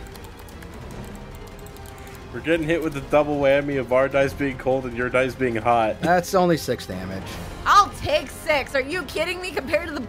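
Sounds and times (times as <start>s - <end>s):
ambient background music: 0.0s - 10.0s.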